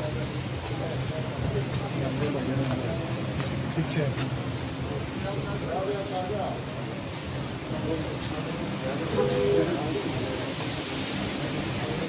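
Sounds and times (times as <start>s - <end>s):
faint indistinct voices: 0.0s - 12.0s
steady hissing noise: 0.0s - 12.0s.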